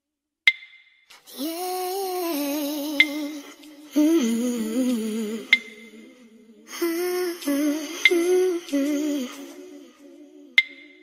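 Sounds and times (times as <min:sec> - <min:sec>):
woman humming: 0:01.2 - 0:11.0.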